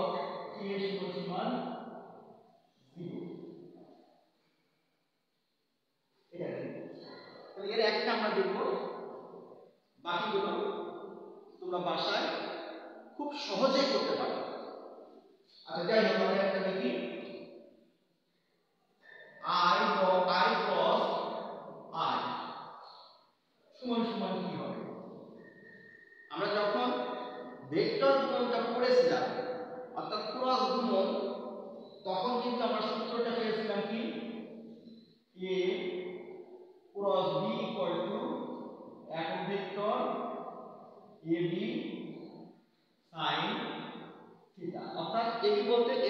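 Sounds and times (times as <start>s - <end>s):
man speaking: 0.0s - 1.6s, 2.9s - 3.3s, 6.3s - 8.9s, 10.0s - 10.7s, 11.6s - 12.6s, 13.2s - 14.6s, 15.6s - 17.3s, 19.0s - 22.4s, 23.8s - 25.1s, 26.3s - 29.4s, 30.0s - 31.3s, 32.0s - 34.2s, 35.4s - 35.9s, 37.0s - 38.5s, 39.1s - 40.2s, 41.2s - 42.1s, 43.1s - 43.7s, 44.6s - 46.0s.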